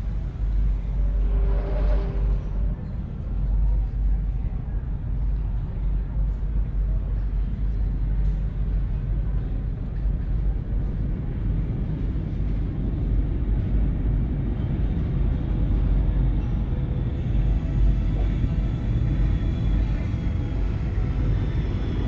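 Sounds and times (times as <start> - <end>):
deep engine-like rumble: 0.0 - 22.0.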